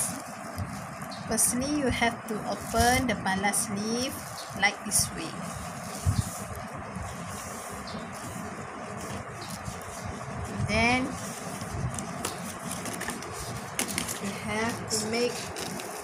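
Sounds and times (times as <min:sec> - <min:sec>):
leaves crackling: 0:00.0 - 0:16.0
steady background noise: 0:00.0 - 0:16.0.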